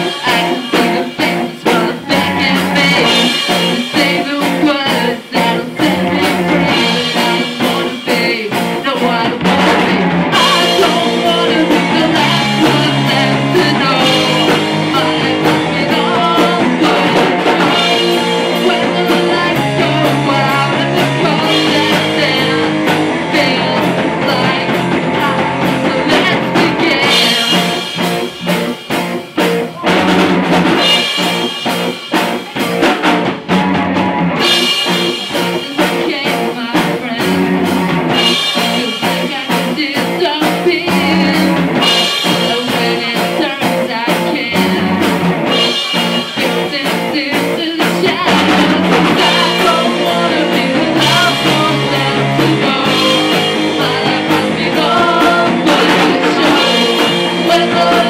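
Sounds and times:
person singing: 0:00.0 - 0:28.3, 0:29.4 - 0:33.0, 0:34.4 - 0:58.0
bass guitar: 0:00.0 - 0:58.0
drum kit beat: 0:00.0 - 0:58.0
electric guitar: 0:00.0 - 0:58.0.

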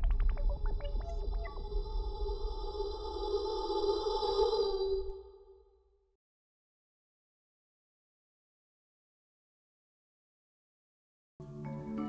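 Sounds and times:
synthetic blips gliding down: 0:00.0 - 0:01.8.

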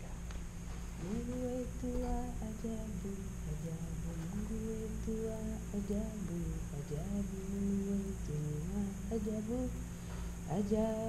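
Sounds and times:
woman singing unaccompanied: 0:01.0 - 0:11.0.

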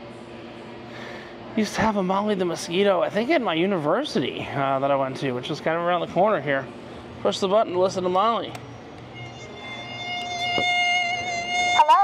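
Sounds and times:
held string-like musical tone: 0:09.1 - 0:12.0.

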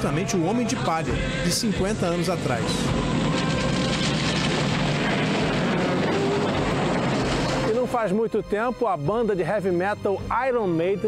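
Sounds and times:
music: 0:00.0 - 0:05.3, 0:06.0 - 0:11.0
fire crackling: 0:01.2 - 0:08.1.

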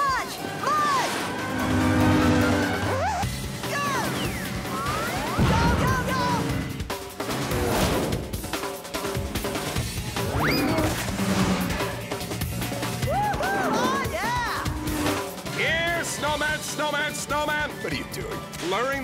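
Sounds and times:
fast chase music: 0:00.1 - 0:19.0
swooping pitch glides: 0:10.2 - 0:12.0.

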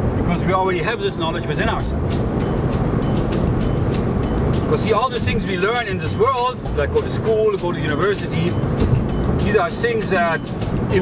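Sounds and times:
road and engine rumble in car: 0:00.0 - 0:11.0
music with light regular beat: 0:01.8 - 0:11.0.

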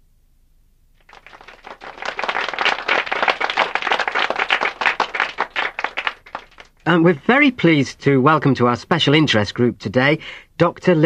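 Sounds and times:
hands clapping: 0:01.0 - 0:06.9.

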